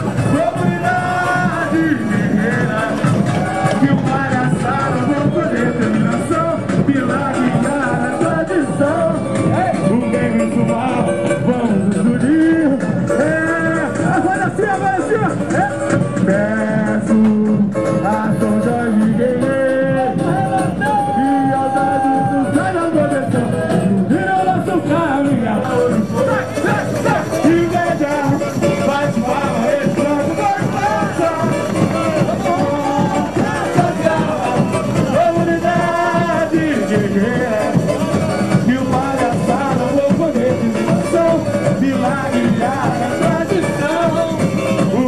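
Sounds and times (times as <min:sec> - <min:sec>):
person singing: 0:00.0 - 0:45.0
samba drum section: 0:00.0 - 0:45.0.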